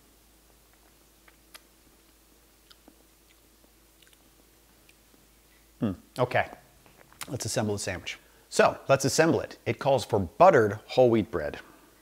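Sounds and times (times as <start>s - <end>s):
faint room hum: 0.0s - 12.0s
mouth and lip clicks: 0.7s - 5.2s, 6.8s - 7.4s.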